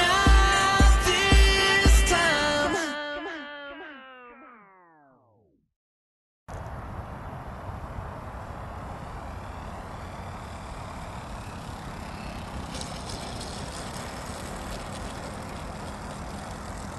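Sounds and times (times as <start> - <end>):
outdoor noise rush: 0.0 - 2.8, 6.5 - 16.9
model aeroplane engine: 6.5 - 16.9
scratchy crackle: 10.6 - 16.9.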